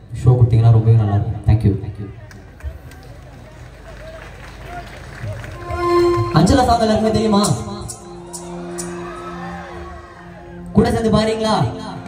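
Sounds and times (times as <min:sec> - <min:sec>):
band chord through loudspeakers: 0:05.4 - 0:12.0
crowd shouting and whooping: 0:08.0 - 0:10.7.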